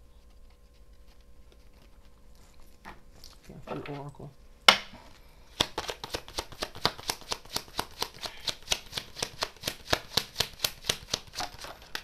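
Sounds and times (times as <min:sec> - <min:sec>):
cards being shuffled: 0:05.5 - 0:12.0.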